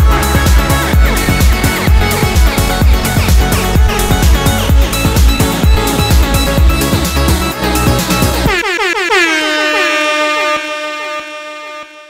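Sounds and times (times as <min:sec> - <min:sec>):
club dance music: 0:00.0 - 0:10.0
air horn effect blasts: 0:00.0 - 0:12.0.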